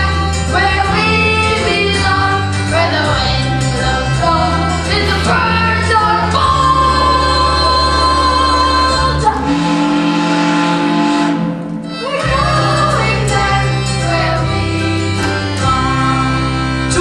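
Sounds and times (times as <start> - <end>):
group singing in unison: 0.0 - 10.4, 12.2 - 17.0
instrumental backing track: 0.0 - 17.0.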